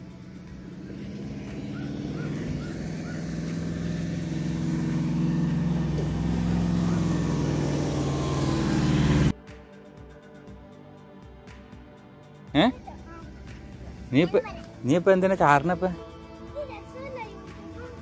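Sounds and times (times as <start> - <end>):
low layered drone: 0.0 - 9.3, 12.8 - 16.6.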